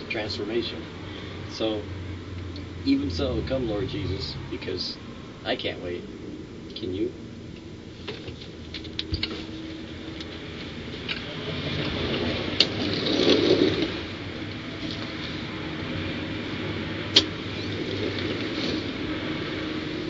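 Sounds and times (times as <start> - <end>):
steady low rumble: 0.4 - 7.4.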